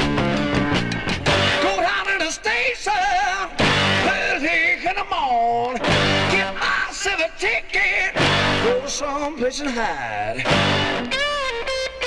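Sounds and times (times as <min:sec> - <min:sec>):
rock band recording from vinyl: 0:00.0 - 0:12.0.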